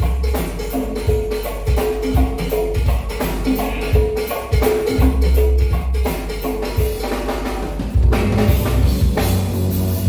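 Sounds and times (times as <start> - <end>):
cowbell struck in rhythm: 0.0 - 10.0
live band percussion groove: 0.0 - 10.0.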